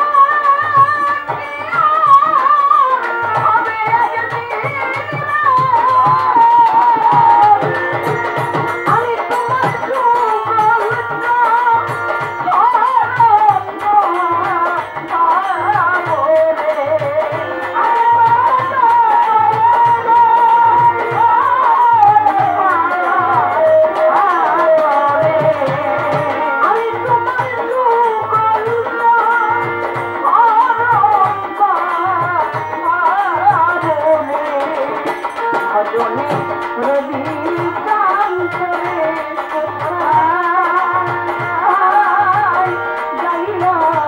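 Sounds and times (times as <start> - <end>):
bowed violin: 0.0 - 44.0
woman singing: 0.0 - 44.0
hand drum beat: 0.7 - 44.0.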